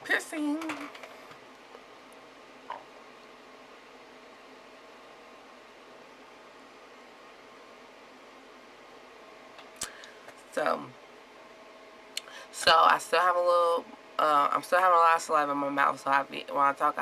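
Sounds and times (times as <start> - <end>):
room tone hiss: 0.0 - 17.0.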